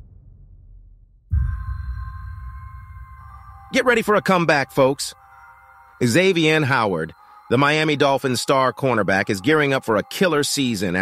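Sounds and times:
deep bass hit: 0.0s - 4.1s
steady high chord: 1.3s - 11.0s.

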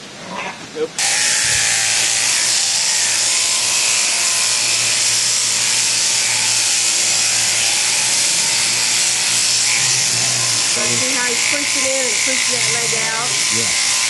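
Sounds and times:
electric shearing handpiece buzzing: 1.0s - 14.0s.

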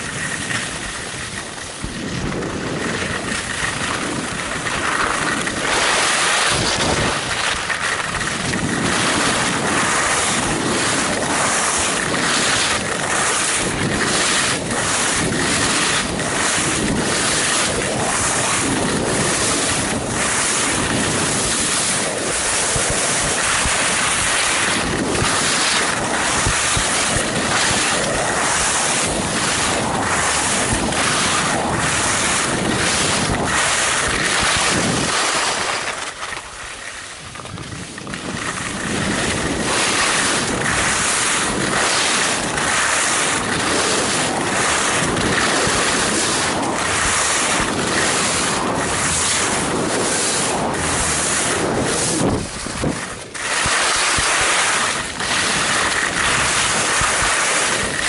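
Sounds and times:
skis carving on packed snow: 0.0s - 58.0s
wind buffeting microphone: 0.0s - 58.0s.

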